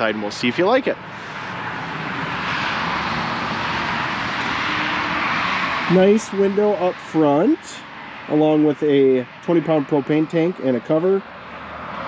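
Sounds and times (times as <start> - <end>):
distant vehicle roar: 0.0 - 12.0.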